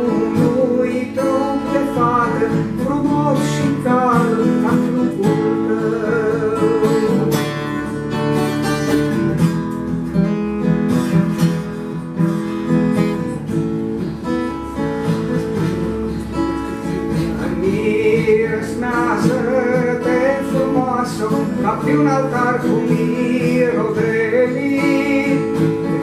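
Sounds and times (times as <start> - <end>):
man singing: 0.0 - 8.3, 16.7 - 26.0
acoustic guitar playing: 0.0 - 26.0.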